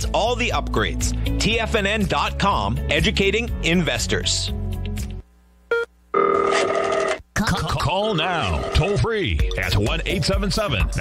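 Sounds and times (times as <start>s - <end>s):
music: 0.0s - 5.2s, 8.7s - 11.0s
telephone ringing: 6.2s - 7.2s, 8.3s - 9.0s.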